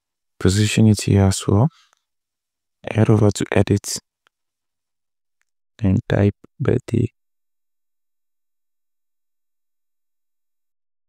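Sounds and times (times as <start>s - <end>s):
person speaking: 5.8s - 7.1s.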